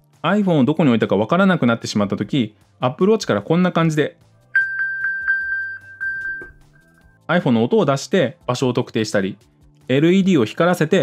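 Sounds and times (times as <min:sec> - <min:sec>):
high electronic pings: 0:04.6 - 0:06.6
held electronic tone: 0:04.6 - 0:06.7.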